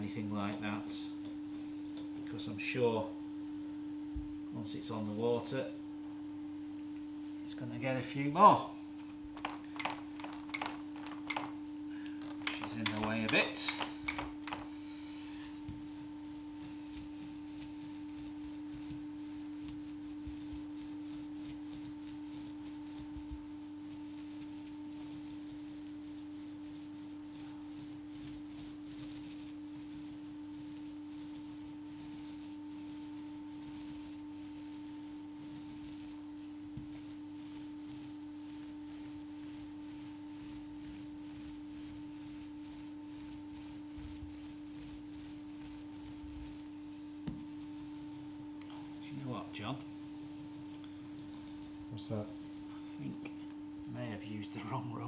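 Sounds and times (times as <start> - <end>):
paint roller crackling and swishing: 0.0 - 5.6, 7.3 - 55.0
steady single-pitch hum: 0.0 - 55.0.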